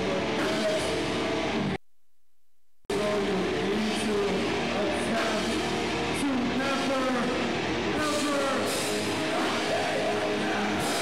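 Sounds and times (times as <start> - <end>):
distorted guitar: 0.0 - 1.8, 2.9 - 11.0
drums: 0.0 - 1.8, 2.9 - 11.0.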